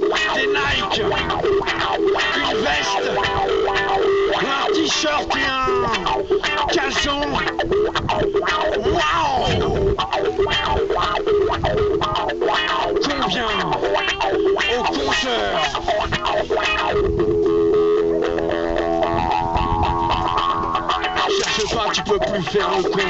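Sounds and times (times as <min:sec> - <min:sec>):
distorted electric guitar: 0:00.0 - 0:23.0
percussion: 0:18.3 - 0:23.0.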